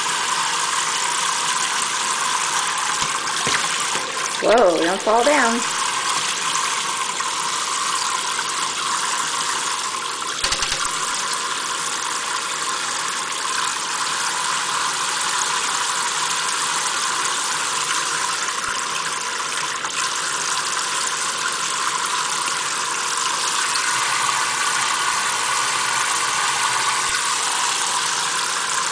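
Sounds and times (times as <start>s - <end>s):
faucet water splashing into sink: 0.0s - 28.9s.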